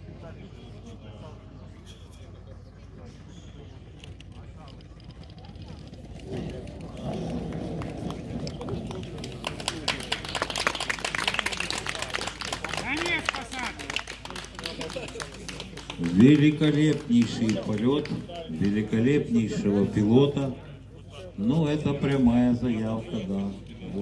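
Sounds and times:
people clapping: 6.0s - 19.5s.

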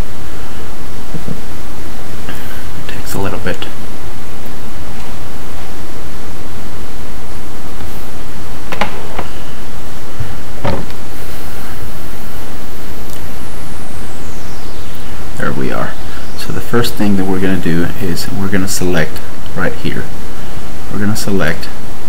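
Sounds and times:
microphone hiss: 0.0s - 22.0s.

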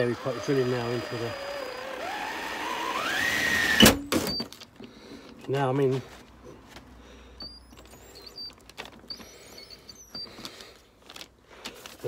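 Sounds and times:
drill motor hum: 0.0s - 3.8s, 7.4s - 10.6s.

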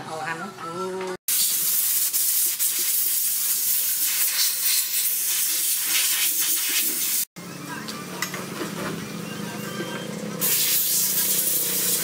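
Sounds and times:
spray gun hissing: 1.3s - 7.3s, 10.4s - 12.0s.

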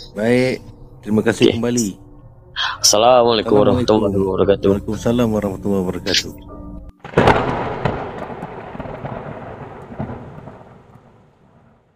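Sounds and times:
thunder rumbling: 7.0s - 11.9s.

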